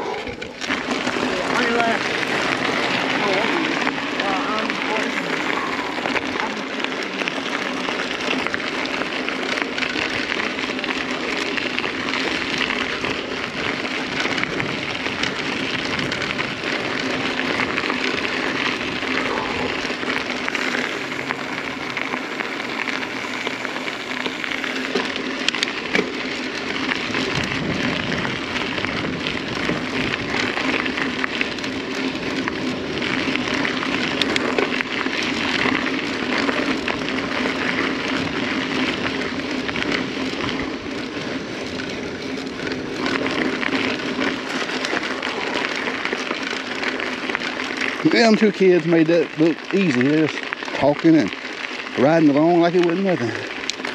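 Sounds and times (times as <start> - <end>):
bike tyres crunching on gravel: 0.0 - 53.9.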